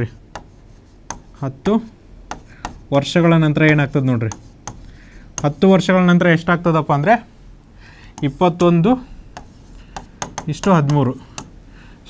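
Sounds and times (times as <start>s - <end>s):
marker scratching on a whiteboard: 0.2s - 5.9s, 9.3s - 11.5s
marker tapping on a whiteboard: 0.3s - 2.9s, 3.6s - 5.7s, 9.3s - 11.6s
man speaking: 1.4s - 2.0s, 2.9s - 4.4s, 5.4s - 7.3s, 8.2s - 9.1s, 10.4s - 11.3s.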